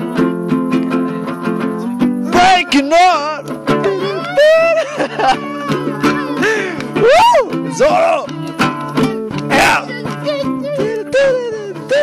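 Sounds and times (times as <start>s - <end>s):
held chords: 0.0s - 12.0s.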